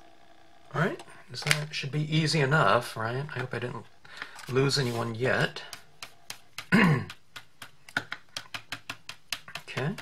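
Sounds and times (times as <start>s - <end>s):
foam tip tapping paper: 4.9s - 10.0s.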